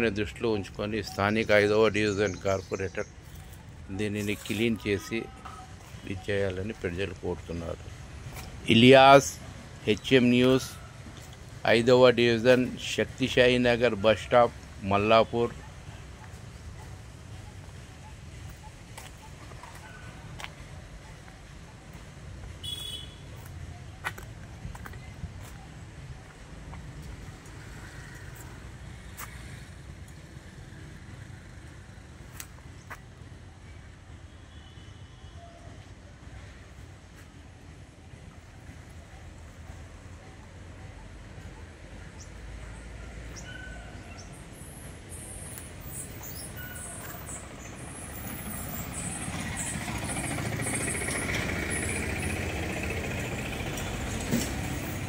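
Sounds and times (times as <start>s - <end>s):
vehicle engine running: 47.2s - 55.0s.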